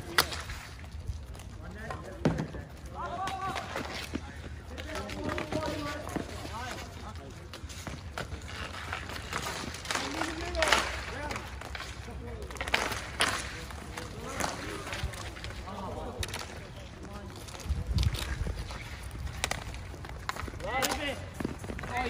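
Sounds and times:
hockey sticks clacking on ball: 0:00.0 - 0:22.0.

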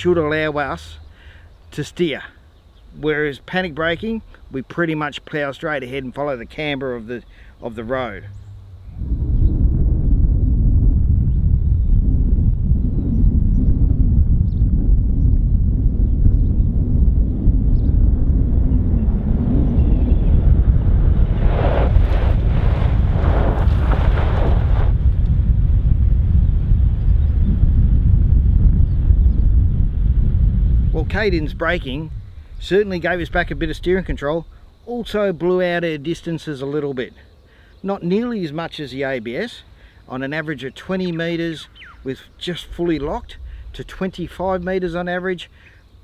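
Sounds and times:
wind buffeting microphone: 0:07.6 - 0:35.3, 0:41.7 - 0:45.2
car tyres skidding on gravel: 0:20.9 - 0:25.2.

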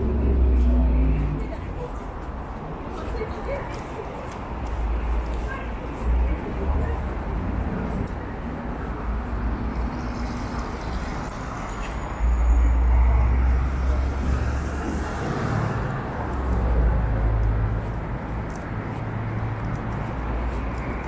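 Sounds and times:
bus passing rumble: 0:00.0 - 0:21.0
steady road traffic: 0:00.0 - 0:21.0.

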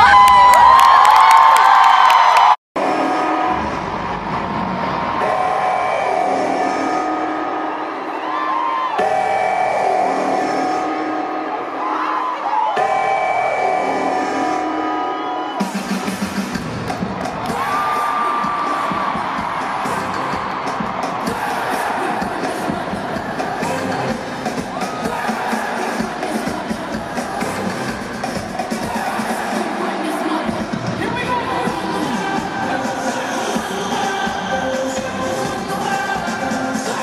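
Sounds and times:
crowd noise: 0:00.0 - 0:37.0
live pop concert music: 0:00.0 - 0:37.0
lead singer's voice: 0:17.4 - 0:37.0.

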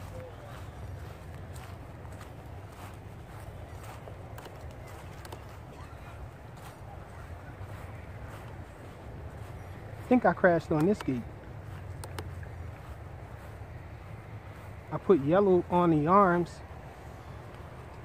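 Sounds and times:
footsteps on grass and dry leaves: 0:00.0 - 0:18.0.

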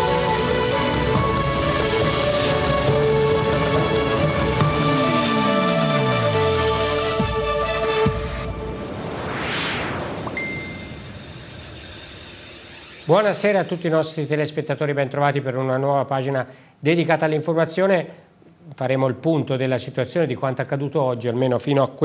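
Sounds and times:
synth theme music with pulsing beat: 0:00.0 - 0:13.4.

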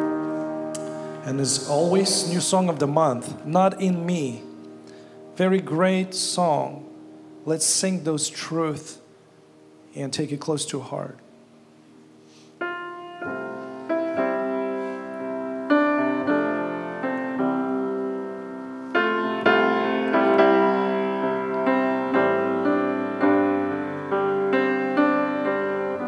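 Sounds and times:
grand piano playing chords: 0:00.0 - 0:26.0.

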